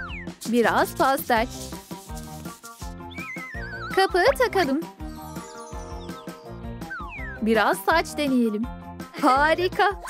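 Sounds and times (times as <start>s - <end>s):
light background music: 0.0s - 10.0s
downward-gliding whistle effect: 5.1s - 7.8s.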